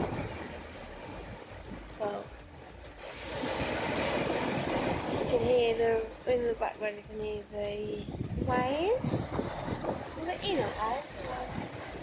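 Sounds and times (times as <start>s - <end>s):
sea waves washing: 0.0s - 12.0s
wind buffeting microphone: 0.0s - 12.0s.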